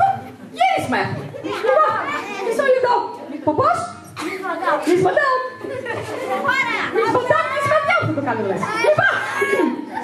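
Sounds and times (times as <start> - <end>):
children calling out: 0.0 - 3.0, 5.9 - 10.0.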